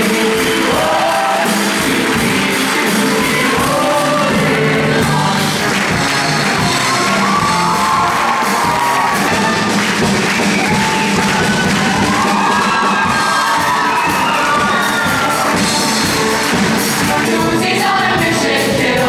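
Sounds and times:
voices singing: 0.0s - 6.6s, 13.2s - 19.0s
band playing lively tune: 0.0s - 19.0s.

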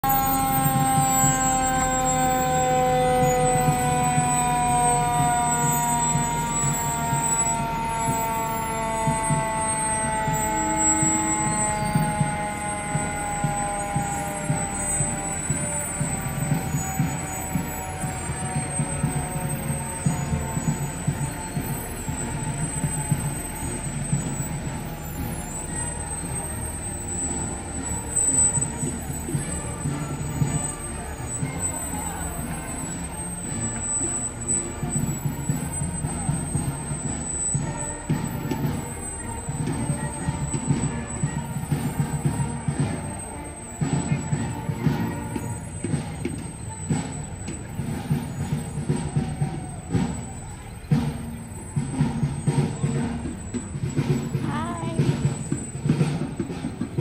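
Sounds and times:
diesel engines rumbling: 0.0s - 57.0s
fire truck siren winding down: 0.0s - 57.0s.

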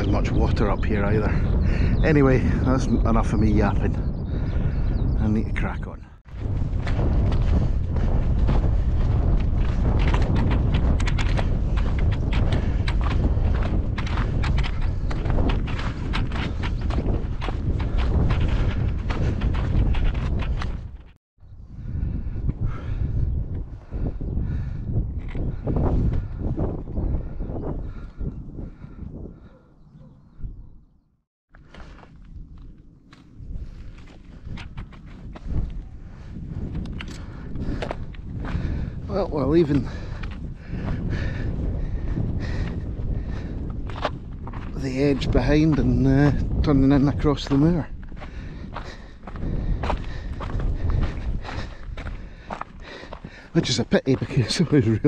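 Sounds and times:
wind buffeting microphone: 0.0s - 55.0s
footsteps on stony path: 6.2s - 21.2s, 31.5s - 55.0s.

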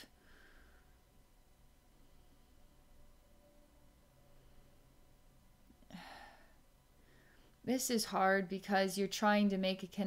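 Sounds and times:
woman sighing: 5.8s - 6.6s.

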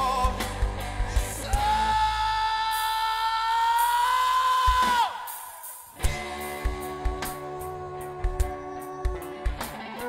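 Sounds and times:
rock band holding high note: 0.0s - 10.0s.

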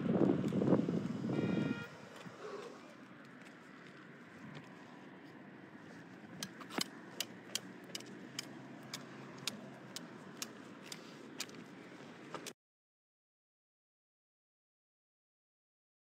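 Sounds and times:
bicycle tyres and wind rumble: 0.0s - 12.5s
sharp clicks: 6.4s - 11.6s.

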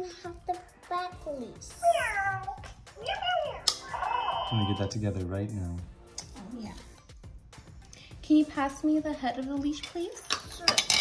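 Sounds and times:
toy cat meowing: 1.8s - 4.9s.

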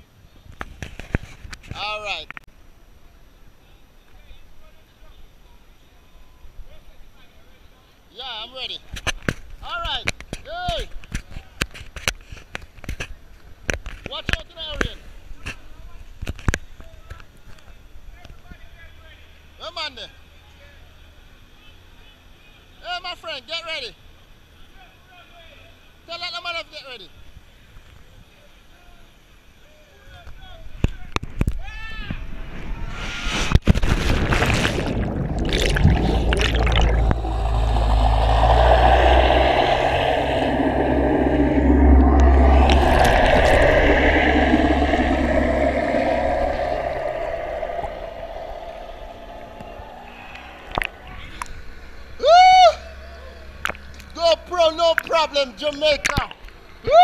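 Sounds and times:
wind rumble on microphone: 32.4s - 51.9s
bubbles streaming: 34.3s - 51.2s.

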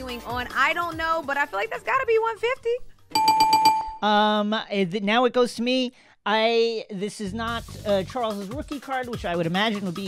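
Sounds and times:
rapid ringing bell sound effect: 3.1s - 4.0s.

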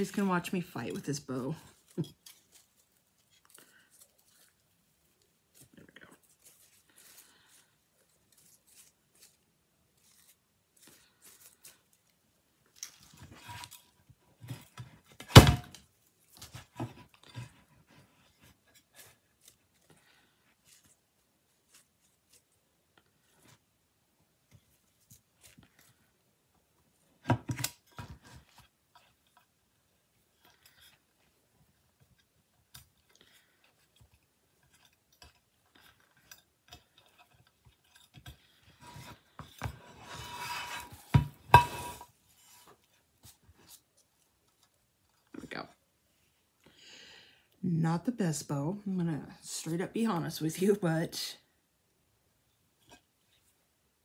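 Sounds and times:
ribbon rustling: 0.0s - 15.2s, 15.8s - 23.7s.

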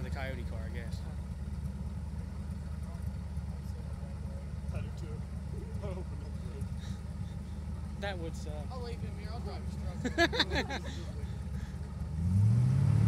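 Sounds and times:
car engines idling: 0.0s - 13.0s
faint voices of onlookers: 8.9s - 12.0s.

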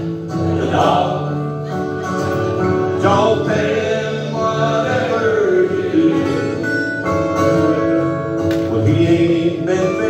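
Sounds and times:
acoustic guitars playing: 0.0s - 10.0s
man singing: 2.8s - 6.8s, 8.6s - 10.0s.

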